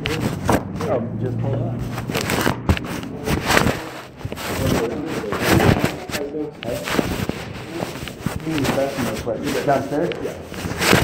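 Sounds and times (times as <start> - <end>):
recorder handling noise: 1.8 - 11.0.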